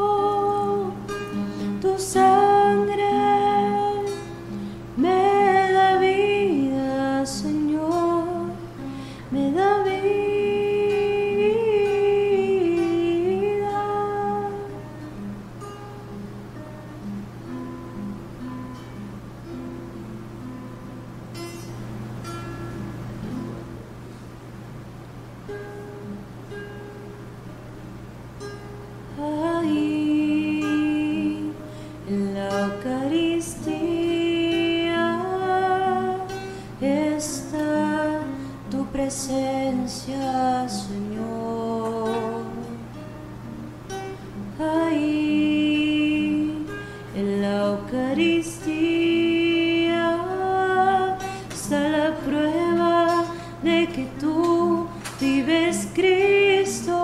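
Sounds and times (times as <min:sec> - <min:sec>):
person singing a hymn: 0:00.0 - 0:04.4, 0:05.0 - 0:14.8, 0:29.2 - 0:43.0, 0:44.6 - 0:57.0
plucked acoustic guitar: 0:00.0 - 0:57.0.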